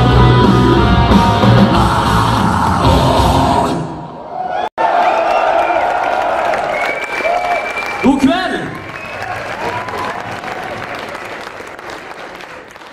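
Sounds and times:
whoops and shouts: 4.3 - 10.4
crowd applauding and cheering: 4.3 - 12.9.

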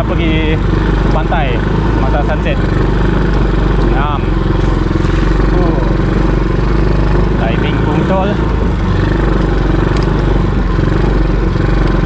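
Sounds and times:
atv engine running: 0.0 - 12.0.

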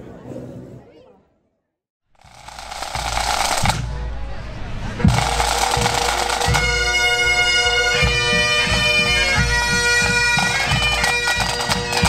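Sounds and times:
bagpipes with drums: 2.2 - 3.9, 5.0 - 12.0.

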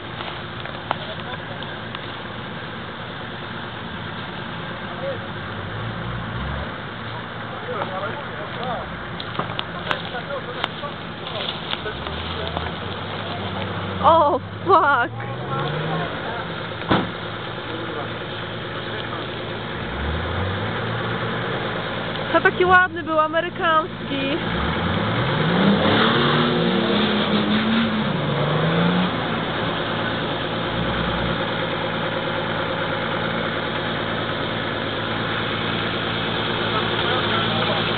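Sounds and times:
car engine rumbling: 0.0 - 37.9.

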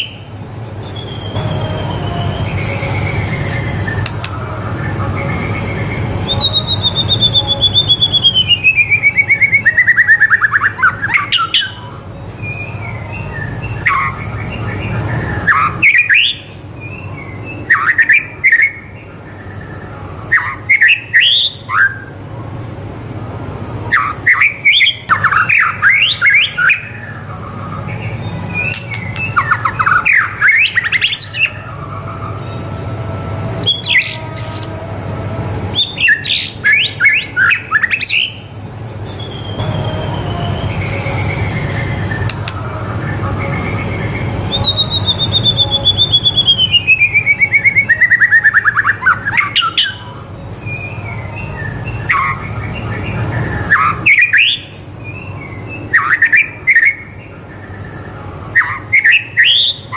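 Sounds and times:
songbird whistling song: 0.0 - 22.2, 23.8 - 34.9, 35.7 - 59.9.

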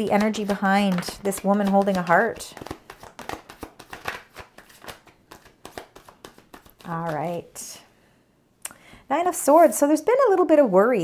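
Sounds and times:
cards being shuffled: 0.1 - 7.5.

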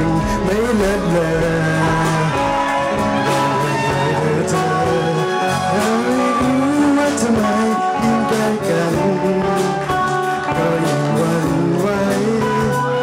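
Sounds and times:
bass guitar: 0.0 - 13.0
electric guitar: 0.0 - 13.0
person singing: 0.0 - 13.0
steady drum beat: 0.0 - 13.0.

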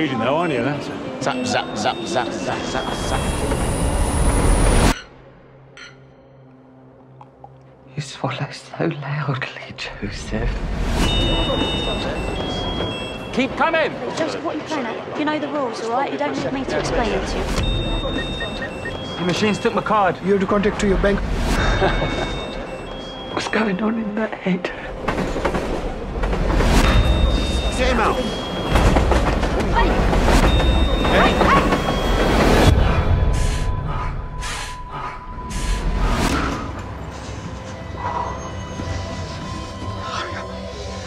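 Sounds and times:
train rumbling and rattling: 2.4 - 5.0, 24.6 - 33.8.

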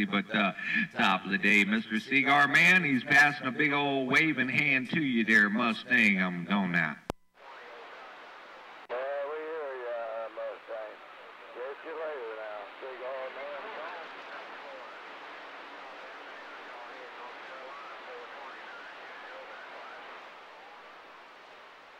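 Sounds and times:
faint wavering radio voice: 0.0 - 20.8
radio static hiss: 0.0 - 21.9.

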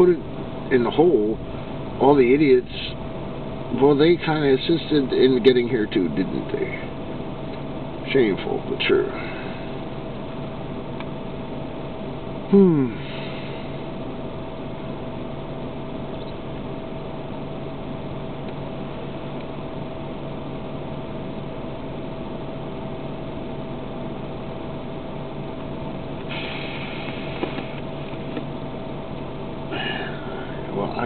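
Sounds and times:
car heater fan blowing: 0.0 - 31.0
brief loud hiss: 26.3 - 27.8.

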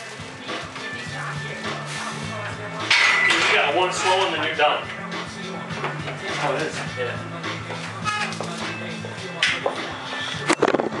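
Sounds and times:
background music with low held notes: 0.0 - 11.0.

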